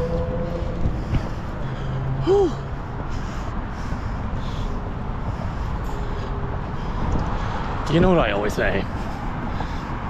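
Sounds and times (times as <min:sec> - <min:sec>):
wind buffeting microphone: 0:06.5 - 0:10.0.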